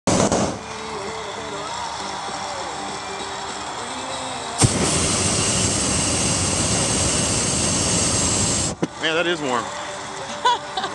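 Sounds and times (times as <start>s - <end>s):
burner ignition click: 4.6s - 8.8s
propane burner roaring: 4.6s - 9.3s.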